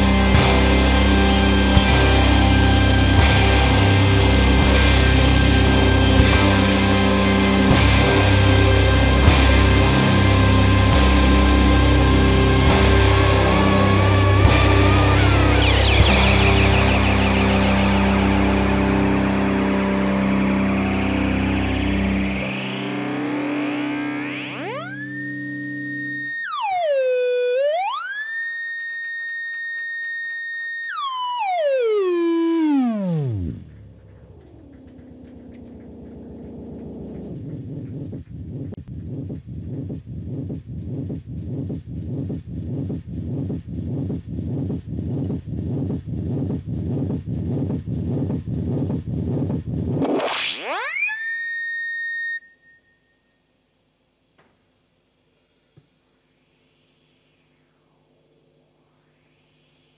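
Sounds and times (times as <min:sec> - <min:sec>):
live band drums and bass: 0:00.0 - 0:11.8
low drone: 0:00.0 - 0:26.4, 0:31.7 - 0:50.2
gliding electronic tone: 0:00.0 - 0:40.5, 0:55.9 - 0:59.9.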